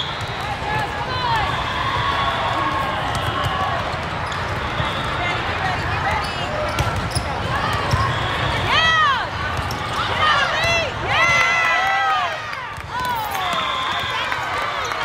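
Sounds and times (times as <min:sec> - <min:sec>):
many voices chattering: 0:00.0 - 0:15.0
sneakers squeaking on court: 0:05.8 - 0:08.5
balls hit and bouncing: 0:06.6 - 0:08.1.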